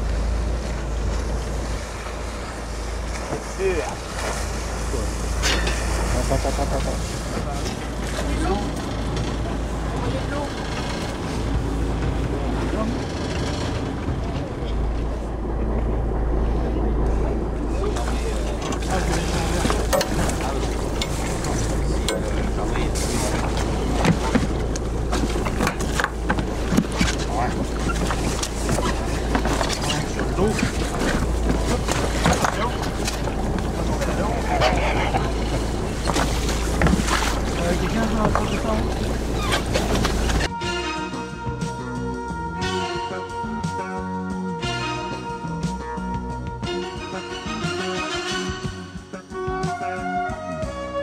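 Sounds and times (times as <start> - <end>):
knocks of boats: 0.0 - 43.8
boat low rumble: 0.0 - 51.0
indistinct voices: 4.8 - 40.5.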